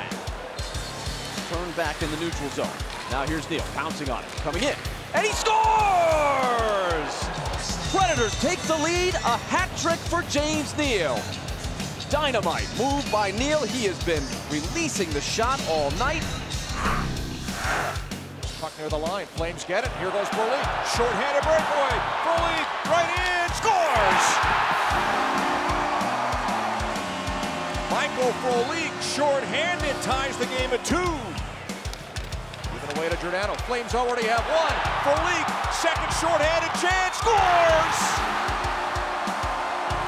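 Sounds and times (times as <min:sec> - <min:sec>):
crowd cheering: 0:00.0 - 0:11.1, 0:19.3 - 0:40.0
background music with quick beat: 0:00.0 - 0:40.0
commentator shouting: 0:05.1 - 0:07.2, 0:33.7 - 0:38.3.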